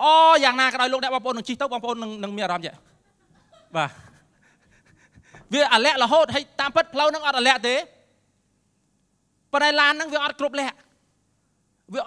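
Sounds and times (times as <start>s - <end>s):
man preaching over loudspeaker: 0.0s - 2.8s, 5.5s - 8.0s, 9.6s - 10.8s
man breathing hard: 4.4s - 5.5s.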